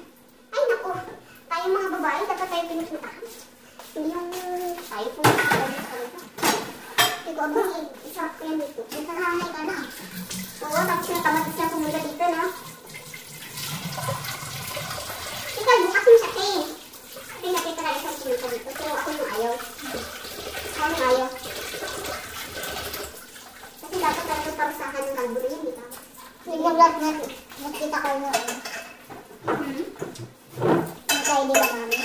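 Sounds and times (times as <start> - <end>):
running water from a tap: 9.0 - 28.6.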